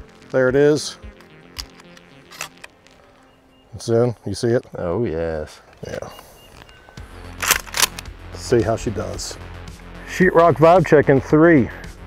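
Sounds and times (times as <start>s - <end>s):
background music: 0.0s - 12.0s
shotgun slide racking: 7.4s - 8.1s.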